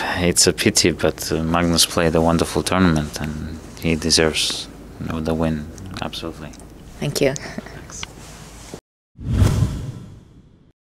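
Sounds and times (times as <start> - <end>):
whoosh with low boom: 9.2 - 10.7.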